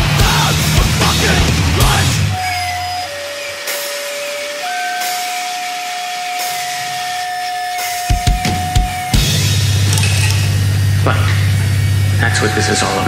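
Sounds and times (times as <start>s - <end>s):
guitar amplifier feedback whine: 0.0s - 13.0s
amplifier hiss: 2.2s - 13.0s.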